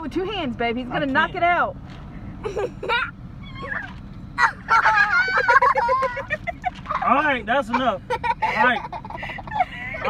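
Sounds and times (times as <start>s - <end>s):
person cackling laughter: 4.7s - 7.0s.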